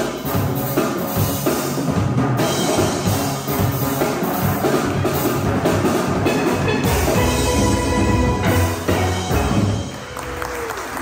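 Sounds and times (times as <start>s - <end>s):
drum kit beat: 0.0s - 10.4s
steel pans playing a tune: 6.2s - 9.8s.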